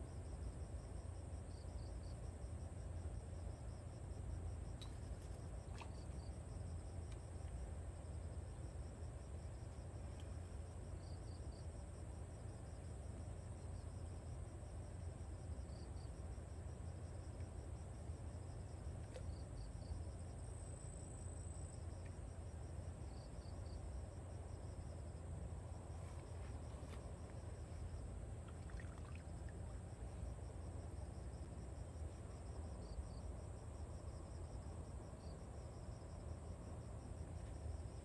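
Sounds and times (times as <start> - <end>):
insects chirping: 0.0 - 38.0
low steady rumble: 0.0 - 38.0.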